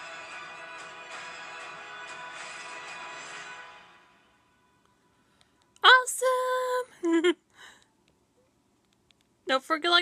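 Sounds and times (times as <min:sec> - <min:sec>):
trailer music from television: 0:00.0 - 0:05.8.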